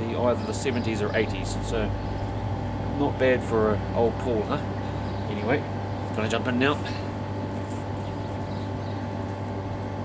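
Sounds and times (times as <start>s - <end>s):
electric pump motor humming: 0.0s - 10.0s.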